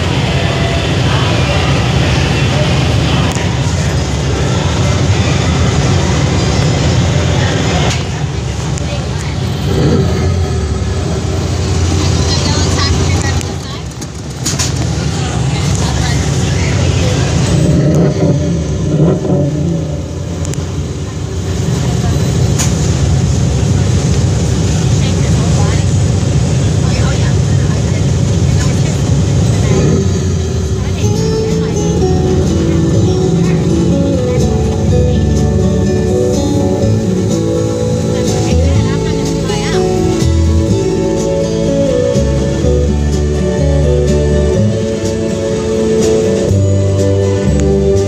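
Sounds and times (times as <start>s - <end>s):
people's voices: 0.0s - 48.0s
ride vehicle rumbling on track: 0.0s - 48.0s.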